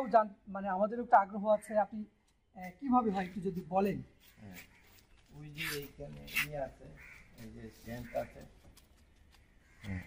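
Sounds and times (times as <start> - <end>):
men speaking: 0.0 - 9.0.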